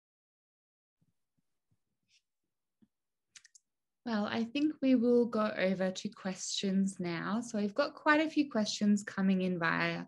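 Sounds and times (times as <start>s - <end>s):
faint sharp clicks: 3.3s - 3.7s.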